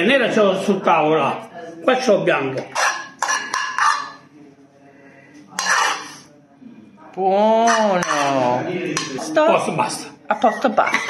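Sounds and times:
metal spoon scraping frying pan: 0:02.6 - 0:04.2, 0:05.6 - 0:06.3, 0:07.6 - 0:09.2.

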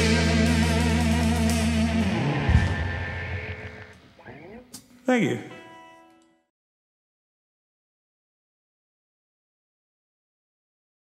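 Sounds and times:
rock band chord ringing: 0:00.0 - 0:04.0, 0:05.2 - 0:06.4.

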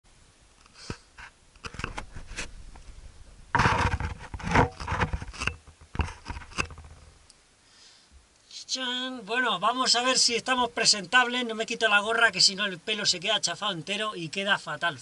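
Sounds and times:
scraping and rubbing on microphone: 0:00.6 - 0:07.2.

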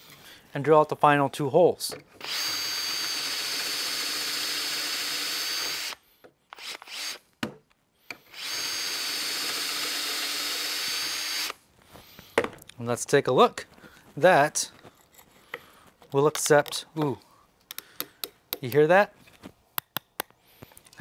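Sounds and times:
cordless drill boring wood: 0:02.2 - 0:07.2, 0:08.1 - 0:11.6.

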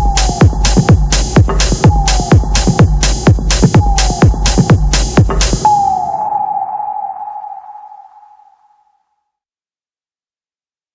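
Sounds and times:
kick drum and cymbal hits: 0:00.0 - 0:05.7
ringing electronic tone: 0:05.7 - 0:08.9.

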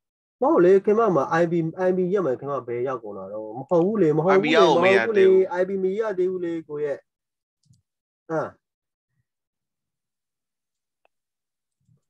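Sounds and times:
person talking: 0:04.2 - 0:05.5.

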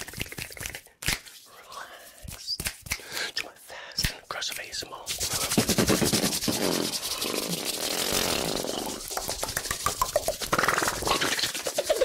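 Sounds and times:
mouth noises: 0:00.0 - 0:12.0
hands rubbing on microphone: 0:04.5 - 0:12.0.

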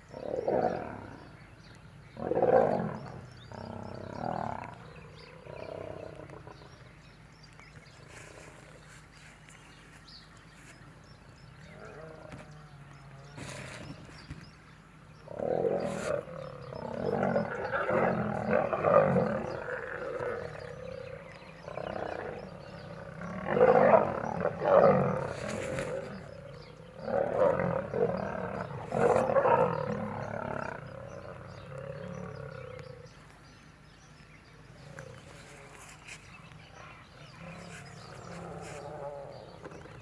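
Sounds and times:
lions snarling and growling: 0:00.0 - 0:01.4, 0:02.1 - 0:06.9, 0:15.2 - 0:33.2, 0:34.7 - 0:40.0.

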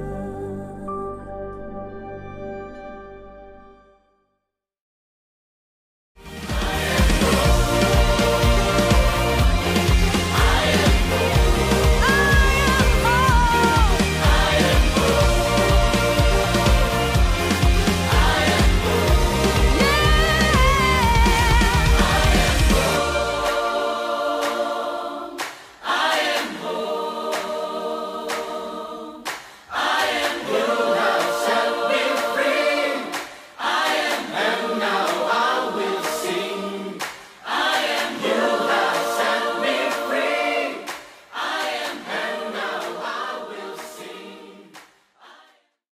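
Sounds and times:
choir singing unaccompanied: 0:06.4 - 0:45.6.

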